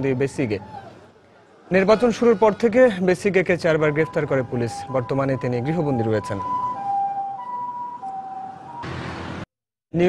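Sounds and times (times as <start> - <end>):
two-tone siren: 3.7 - 9.0.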